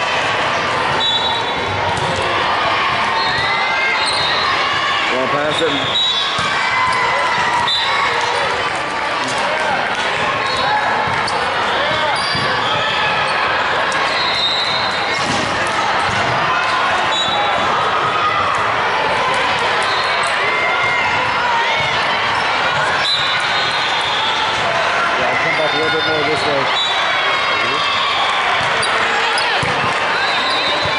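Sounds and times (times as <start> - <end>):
many overlapping voices: 0.0 - 30.9.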